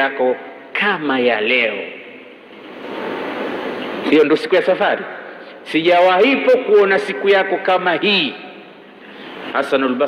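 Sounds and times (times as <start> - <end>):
steady rushing noise: 2.3 - 5.5.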